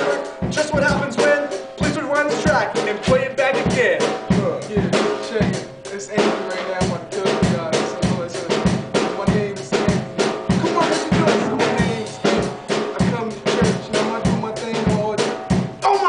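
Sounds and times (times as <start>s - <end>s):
acoustic drum kit beat: 0.0s - 16.0s.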